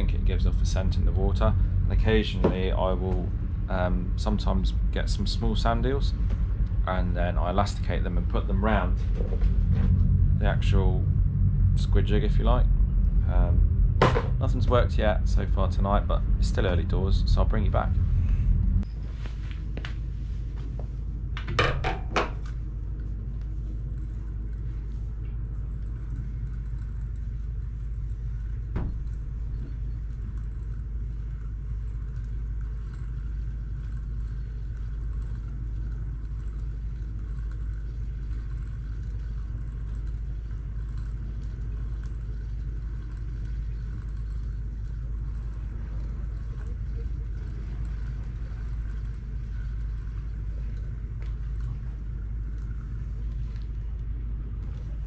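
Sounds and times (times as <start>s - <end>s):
low mechanical drone: 0.0s - 55.0s.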